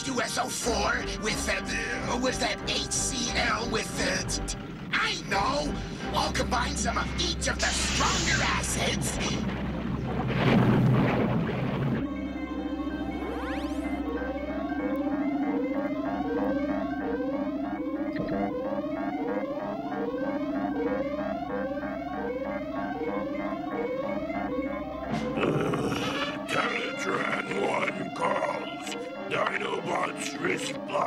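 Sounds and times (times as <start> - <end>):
low synth drone: 0.6 - 30.8
electronic rising sweep: 12.0 - 25.4.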